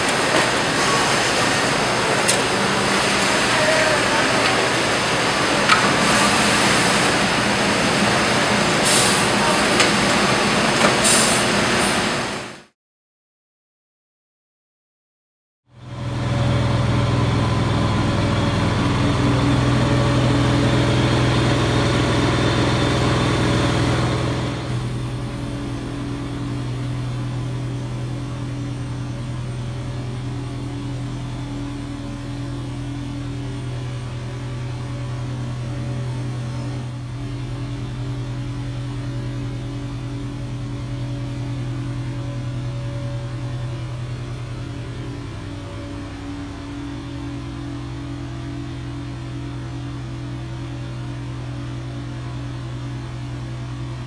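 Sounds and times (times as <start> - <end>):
van engine hum: 15.7 - 54.0.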